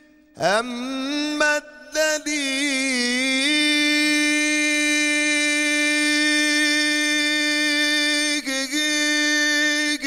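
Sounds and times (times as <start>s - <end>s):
man singing devotional chant: 0.0s - 10.0s.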